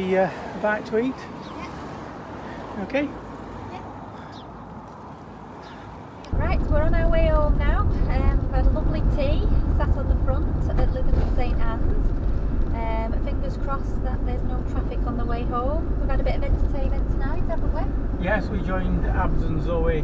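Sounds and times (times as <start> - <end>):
engine and road rumble: 0.0 - 20.0
woman talking: 6.3 - 12.1, 12.7 - 17.9.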